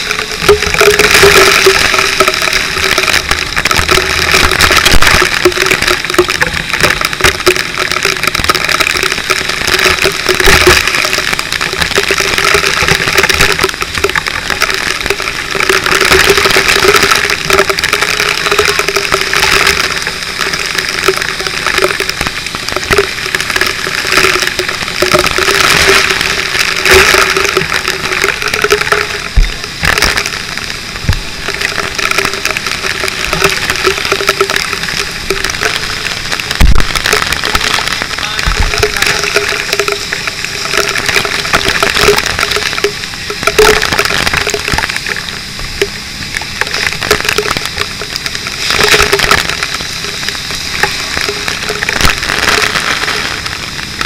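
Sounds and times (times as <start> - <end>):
fire hose spraying water: 0.0 - 54.0
low hum: 0.0 - 54.0.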